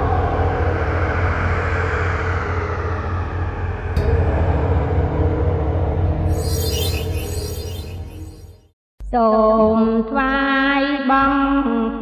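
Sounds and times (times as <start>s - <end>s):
falling whoosh: 6.3s - 8.6s
sharp hit: 6.3s - 8.6s.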